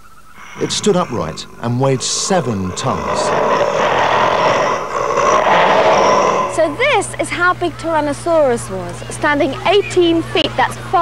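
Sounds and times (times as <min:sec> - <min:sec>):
rough dinosaur roar: 0:00.4 - 0:07.2.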